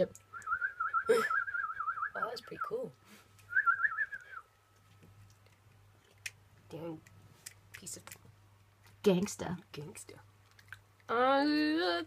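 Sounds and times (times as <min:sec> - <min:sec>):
warbling whistle: 0:00.3 - 0:02.8, 0:03.5 - 0:04.5.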